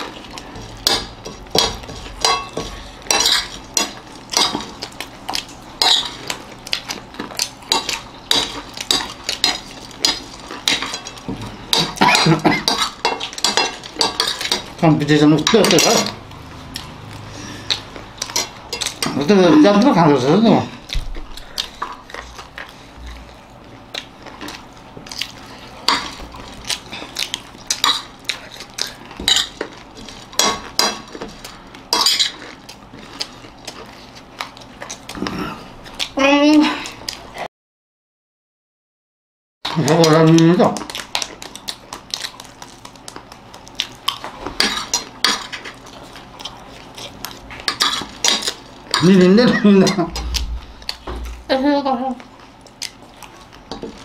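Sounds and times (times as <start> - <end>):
spoons clinking on plates: 0.8 - 4.6.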